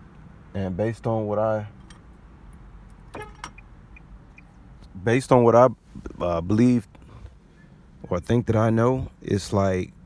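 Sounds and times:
low rumble in car cabin: 0:00.0 - 0:10.0
short pitched tone: 0:03.1 - 0:03.7.

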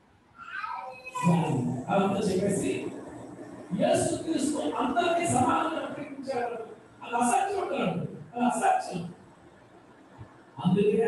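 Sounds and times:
man speaking into microphone: 0:01.1 - 0:09.2, 0:10.6 - 0:11.0.

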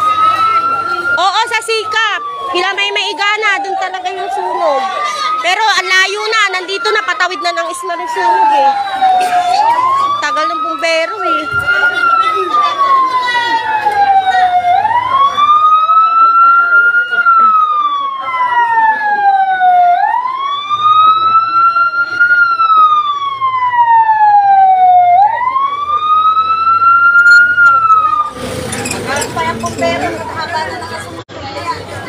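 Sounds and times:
emergency siren wailing: 0:00.0 - 0:31.2.

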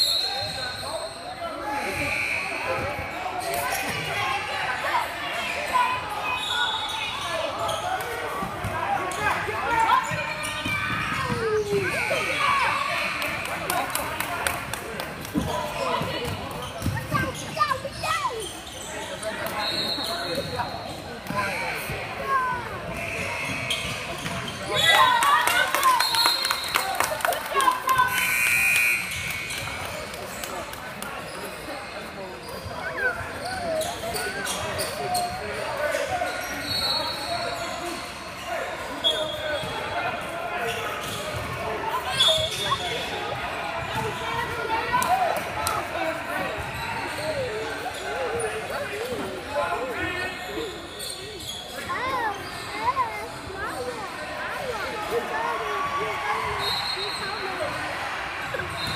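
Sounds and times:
players and spectators shouting: 0:00.3 - 0:14.1, 0:51.9 - 0:58.9.

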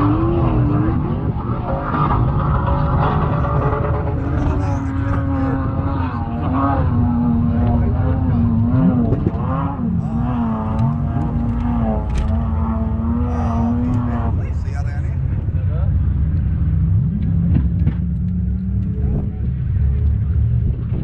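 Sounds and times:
engines rumbling: 0:00.0 - 0:21.0.

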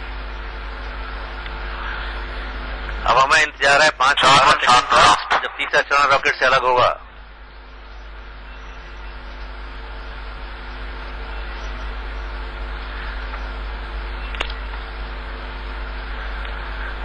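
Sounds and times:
mains hum: 0:00.0 - 0:17.0
click: 0:14.3 - 0:14.6.

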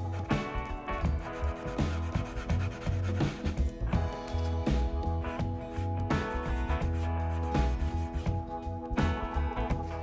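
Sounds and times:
pastel stick rubbing on paper: 0:00.0 - 0:03.8, 0:05.7 - 0:08.4
background music: 0:00.0 - 0:10.0.

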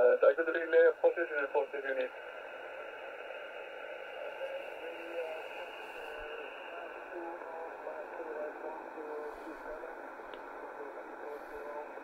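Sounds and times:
shortwave receiver hiss: 0:00.0 - 0:12.0
faint voice on radio: 0:04.2 - 0:12.0.

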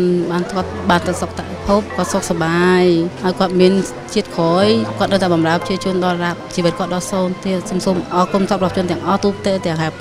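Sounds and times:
background music: 0:00.0 - 0:10.0
woman speaking: 0:00.0 - 0:10.0.

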